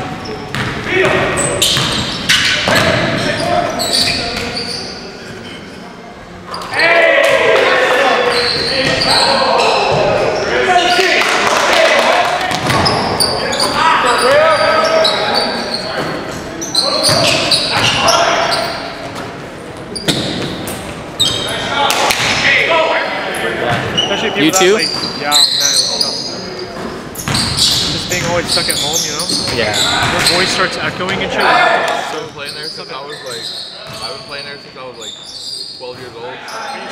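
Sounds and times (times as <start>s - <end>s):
players calling out: 6.4s - 19.0s.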